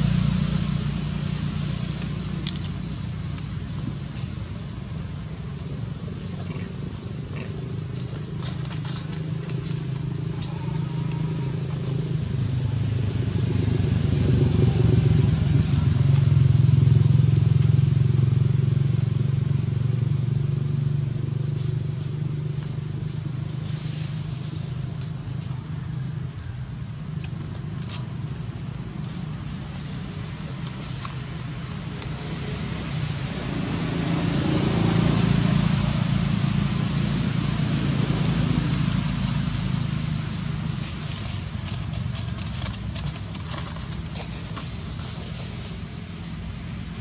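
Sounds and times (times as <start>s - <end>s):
dry leaves crackling: 0.0s - 47.0s
vehicle engine hum passing: 0.0s - 47.0s.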